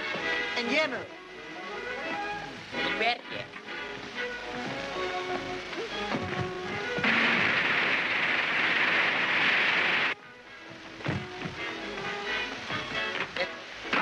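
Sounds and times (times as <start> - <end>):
light background music: 0.0 - 14.0.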